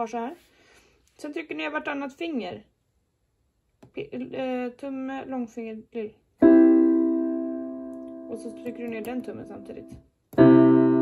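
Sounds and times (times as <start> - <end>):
piano chord: 6.4 - 11.0.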